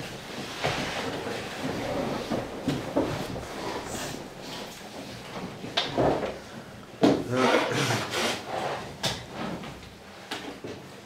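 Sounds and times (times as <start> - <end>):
book and laptop shifting on wood: 0.1 - 6.4
person blowing nose: 7.3 - 8.6.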